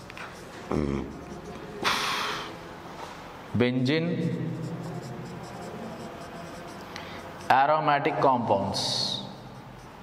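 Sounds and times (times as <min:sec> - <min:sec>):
marker pen writing on whiteboard: 0:00.0 - 0:02.6, 0:03.8 - 0:10.0.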